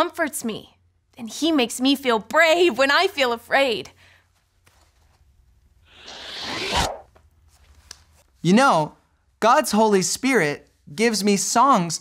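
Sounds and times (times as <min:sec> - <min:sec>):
zipper pulled open: 0:05.9 - 0:07.1.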